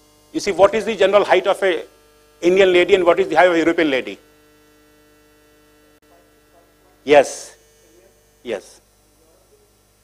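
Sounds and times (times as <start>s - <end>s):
faint electrical hum: 0.0s - 10.0s
man speaking: 0.4s - 4.2s, 6.9s - 9.5s.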